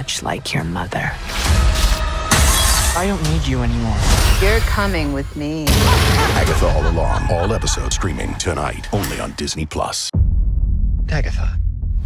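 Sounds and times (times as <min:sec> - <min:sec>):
loud crash: 0:05.7 - 0:06.8.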